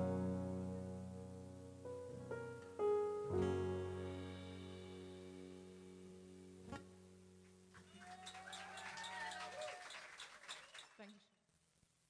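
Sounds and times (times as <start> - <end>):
piano chord: 0.0 - 7.8
audience clapping: 7.7 - 11.2
audience cheer: 7.8 - 11.1.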